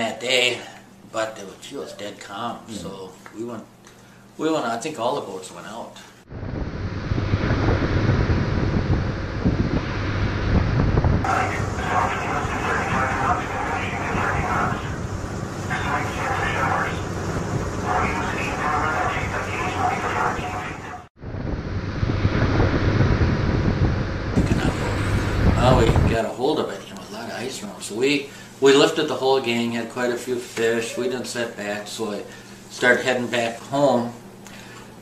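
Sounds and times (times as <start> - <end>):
boat engine hum: 6.3 - 26.1
wind noise on microphone: 6.3 - 26.2.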